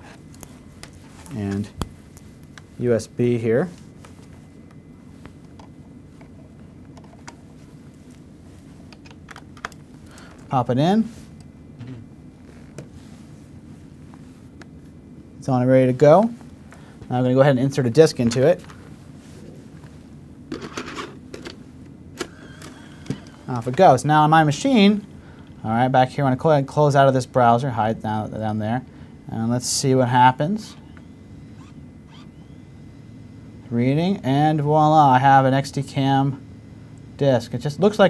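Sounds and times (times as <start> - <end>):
low room hum: 0.0 - 38.0.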